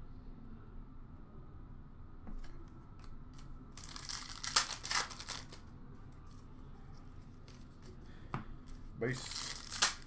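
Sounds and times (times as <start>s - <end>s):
wrapper crinkling and tearing: 3.8s - 5.6s, 9.1s - 10.0s.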